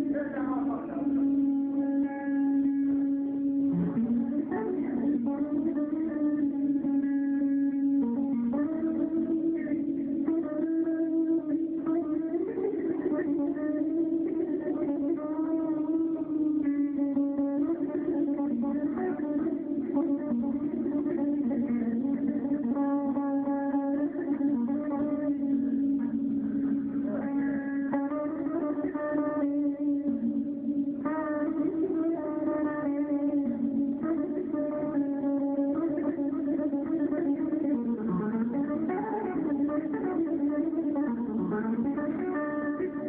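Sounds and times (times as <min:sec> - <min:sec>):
electric guitar melody: 0:00.0 - 0:43.0.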